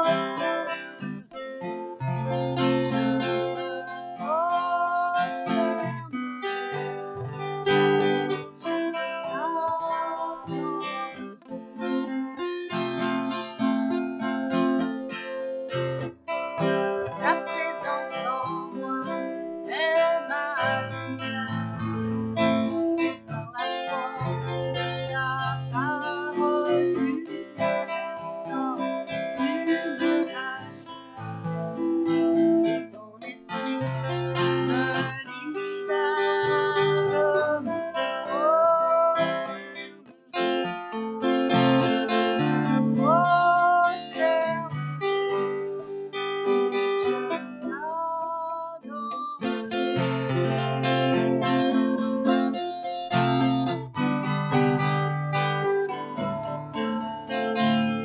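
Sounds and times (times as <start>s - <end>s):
woman singing: 0.0s - 0.9s, 2.9s - 6.9s, 7.7s - 12.9s, 16.6s - 31.0s, 31.8s - 45.5s, 47.1s - 53.4s
acoustic guitar strumming: 0.0s - 58.0s.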